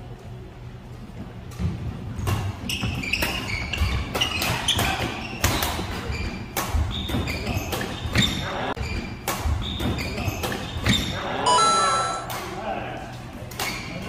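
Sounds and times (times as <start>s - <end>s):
shoe squeaks on wooden floor: 2.7s - 4.4s
high ringing tone: 11.5s - 12.3s.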